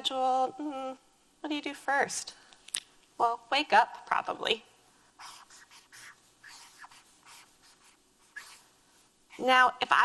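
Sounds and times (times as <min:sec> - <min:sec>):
marker writing on paper: 0:05.2 - 0:08.7.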